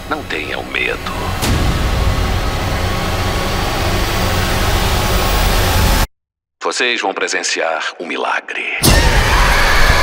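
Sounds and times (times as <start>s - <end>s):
sharp hit: 1.1s - 6.0s.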